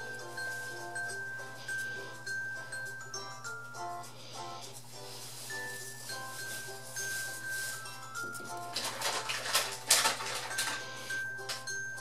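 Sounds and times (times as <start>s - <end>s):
background music melody: 0.0s - 12.0s
plastic toys clicking and rattling: 7.2s - 11.7s.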